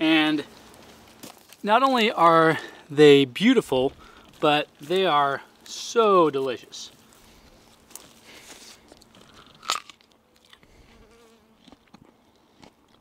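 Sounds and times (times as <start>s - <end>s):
insect buzzing faintly: 4.0s - 11.9s
soft chewing: 6.9s - 13.0s
crunchy bite into fruit: 8.0s - 13.0s.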